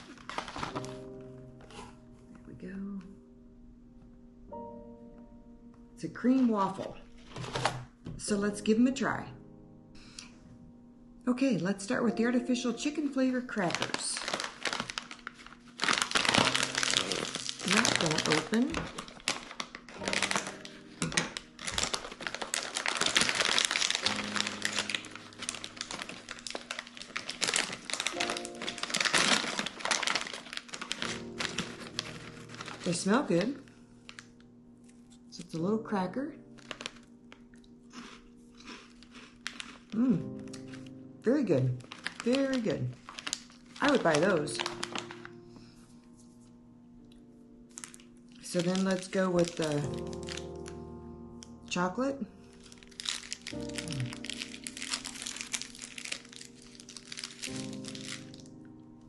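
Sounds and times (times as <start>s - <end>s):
plastic bag rustling and crackling: 0.0s - 1.2s, 6.2s - 8.0s, 13.5s - 35.2s, 36.5s - 37.7s, 38.6s - 45.4s, 47.7s - 50.9s, 52.4s - 58.7s
soft background music: 0.0s - 59.0s.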